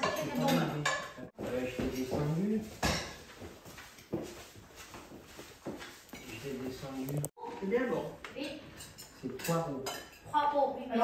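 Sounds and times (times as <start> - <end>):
cutlery clinking on plates: 0.0 - 3.3, 8.4 - 10.4
table conversation: 0.0 - 11.0.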